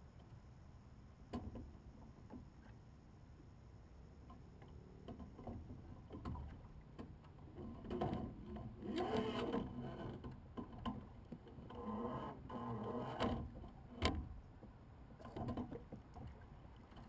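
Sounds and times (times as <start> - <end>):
water sloshing against hull: 4.1 - 17.0.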